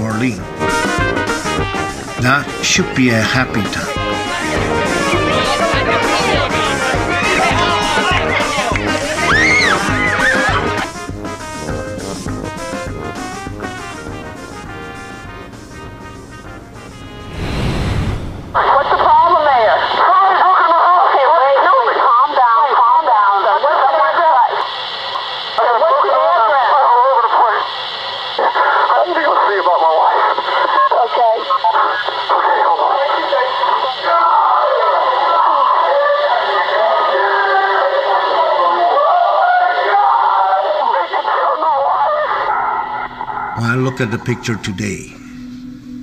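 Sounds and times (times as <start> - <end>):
voices on old recording: 0.0 - 16.7, 18.5 - 46.0
background music: 0.0 - 17.5, 43.3 - 46.0.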